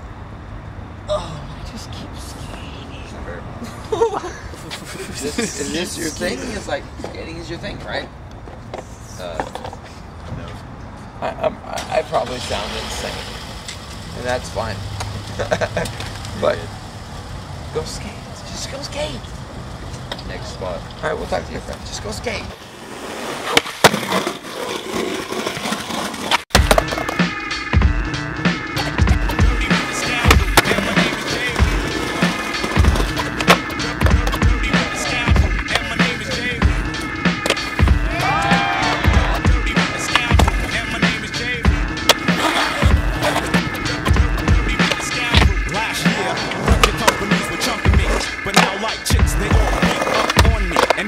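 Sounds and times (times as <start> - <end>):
skateboard wheels rolling on concrete: 2.1 - 51.0
skateboard clacking: 23.0 - 27.4, 29.3 - 51.0
hip-hop instrumental with bass beat: 26.5 - 51.0.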